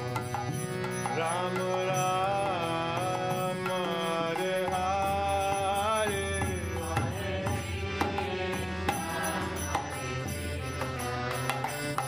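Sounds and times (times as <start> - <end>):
harmonium chords: 0.0 - 12.0
man singing: 0.7 - 10.6.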